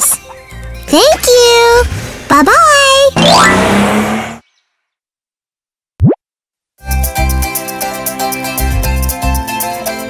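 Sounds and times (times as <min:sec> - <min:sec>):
cartoon bloop sound effect: 0:03.2 - 0:03.6, 0:06.0 - 0:06.2
background music: 0:06.8 - 0:10.0.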